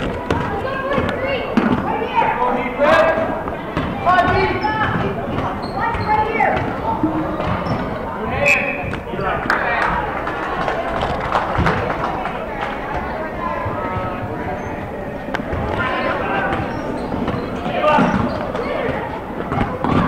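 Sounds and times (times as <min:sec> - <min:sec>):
crowd chatter and shouts: 0:00.0 - 0:20.0.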